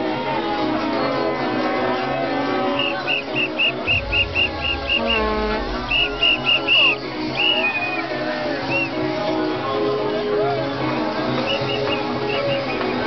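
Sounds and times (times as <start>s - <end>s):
music from sound system: 0.0s - 13.0s
whistle blasts: 2.8s - 8.1s, 11.4s - 12.9s.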